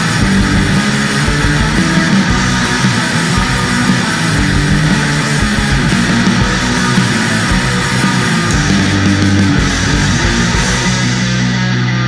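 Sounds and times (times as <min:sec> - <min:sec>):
thrash metal music: 0:00.0 - 0:12.0.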